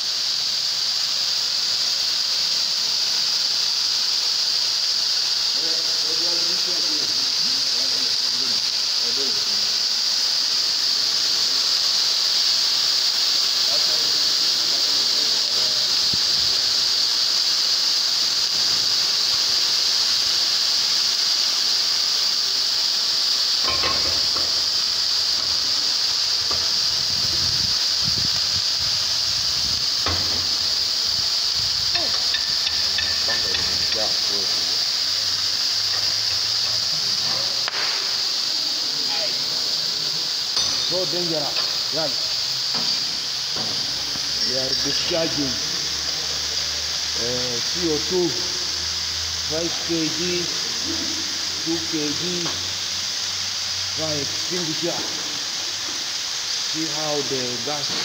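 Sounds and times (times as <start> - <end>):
fire extinguishers hissing: 0.0 - 58.0.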